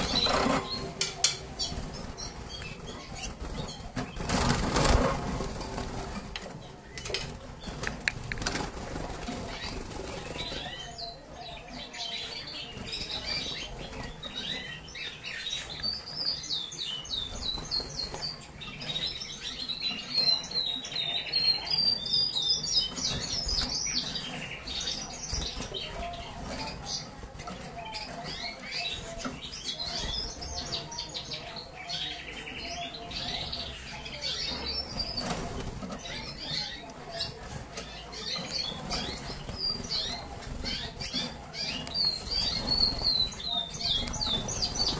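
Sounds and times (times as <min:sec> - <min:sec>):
canary singing: 0:00.0 - 0:44.9.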